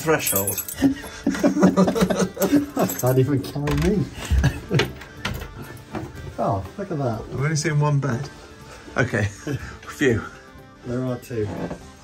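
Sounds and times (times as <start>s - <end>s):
men laughing: 0.8s - 3.2s, 4.1s - 5.9s.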